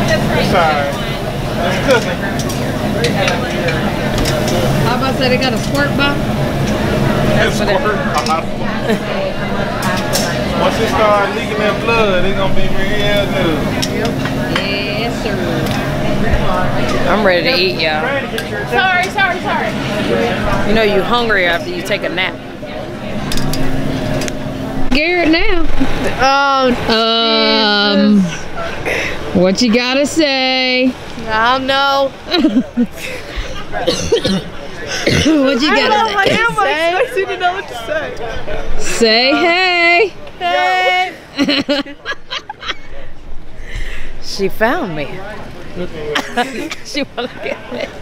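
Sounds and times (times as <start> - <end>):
crowd chatter: 0.0 - 48.0.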